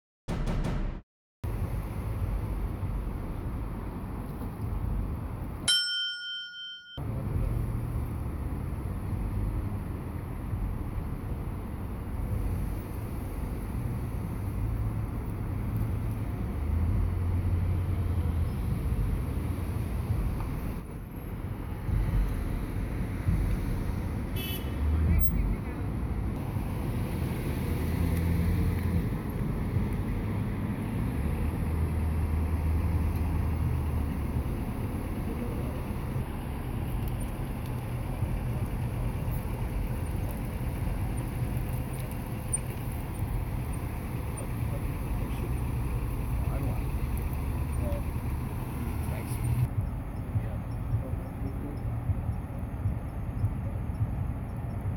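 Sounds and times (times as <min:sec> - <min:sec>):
cars passing with low rumble: 0:00.4 - 0:05.8, 0:07.0 - 0:54.9.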